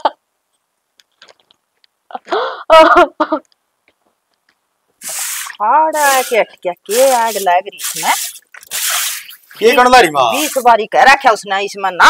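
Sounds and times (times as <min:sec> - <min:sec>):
broom sweeping wet concrete: 0:05.0 - 0:10.7
person speaking: 0:05.0 - 0:12.0.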